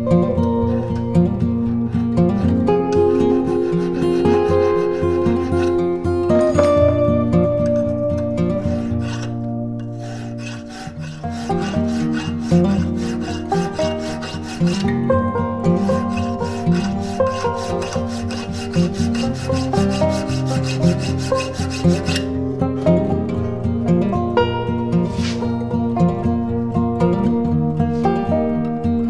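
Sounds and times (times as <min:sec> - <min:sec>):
guitar music: 0:00.0 - 0:29.0
file rasping on steel: 0:02.7 - 0:06.7, 0:07.6 - 0:22.4.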